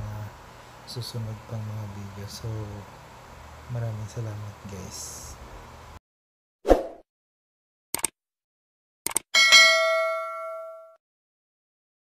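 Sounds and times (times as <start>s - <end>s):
bright bell ding: 9.4s - 11.0s.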